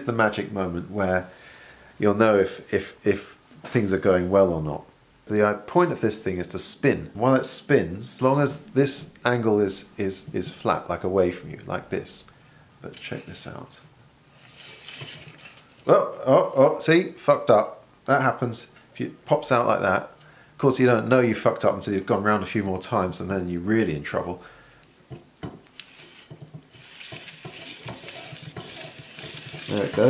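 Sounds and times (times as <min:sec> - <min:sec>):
film feeding hiss: 0:00.0 - 0:30.0
soft plastic rustle: 0:14.3 - 0:15.9, 0:25.7 - 0:30.0
plastic spiral clicking: 0:25.8 - 0:30.0.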